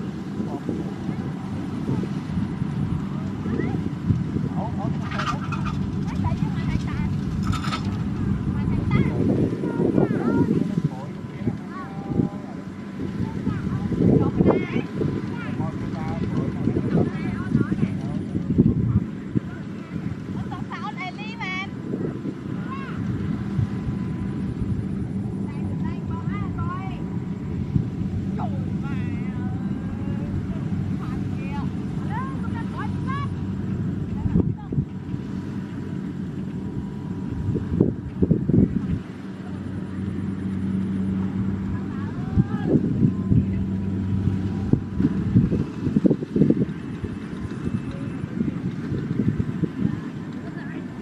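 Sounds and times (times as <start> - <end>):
harvester engine drone: 0.0 - 51.0
steady low rumble: 0.0 - 51.0.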